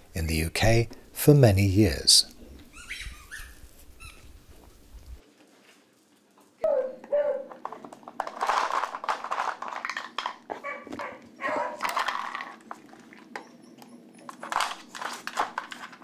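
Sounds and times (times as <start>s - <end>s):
plastic toy pieces clicking: 7.7s - 10.4s.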